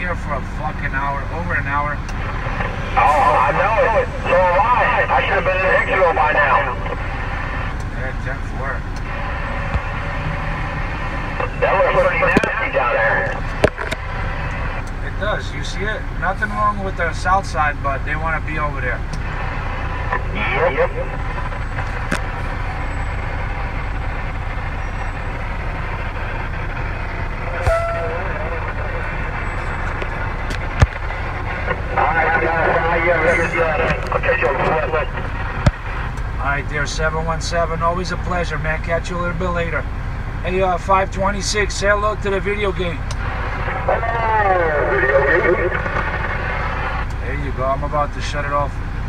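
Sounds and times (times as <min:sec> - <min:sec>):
vehicle cab rumble and hiss: 0:00.0 - 0:49.0
sharp knock: 0:27.6 - 0:28.0.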